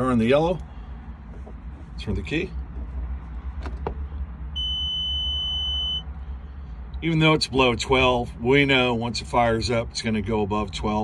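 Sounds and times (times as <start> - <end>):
high warning beep: 4.6 - 6.0.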